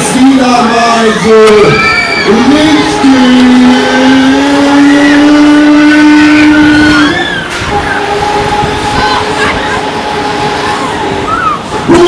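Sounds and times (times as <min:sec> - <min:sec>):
long held tone from loudspeakers: 0:01.7 - 0:12.0
fainter steady tones: 0:02.0 - 0:12.0.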